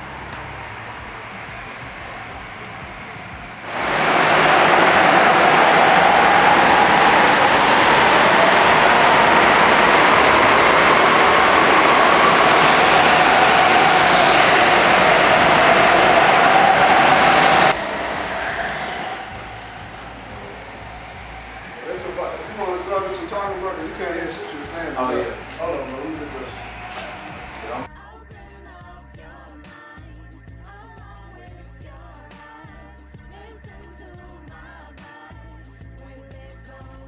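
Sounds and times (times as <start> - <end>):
go-karts engine and tyre noise: 0.0 - 27.9.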